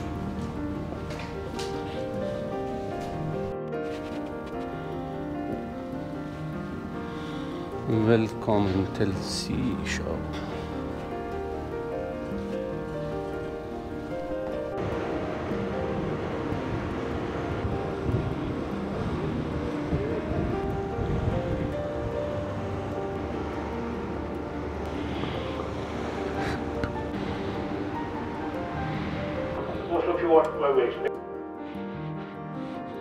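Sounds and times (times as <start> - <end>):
background music: 0.0 - 33.0
churning sea water rushing: 12.7 - 31.0.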